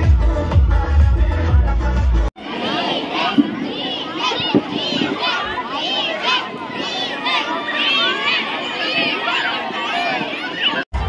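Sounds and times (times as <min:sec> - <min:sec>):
bass-heavy dance music: 0:00.0 - 0:02.3
crowd chattering and shouting: 0:00.0 - 0:11.0
children's voices: 0:02.4 - 0:11.0.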